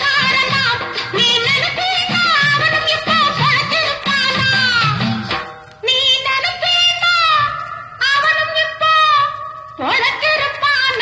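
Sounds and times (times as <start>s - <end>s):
song accompaniment: 0.0s - 11.0s.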